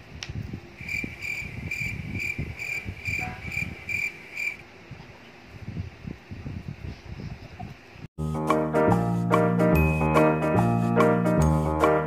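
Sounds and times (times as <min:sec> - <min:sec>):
high insect-like chirps: 0:00.8 - 0:04.6.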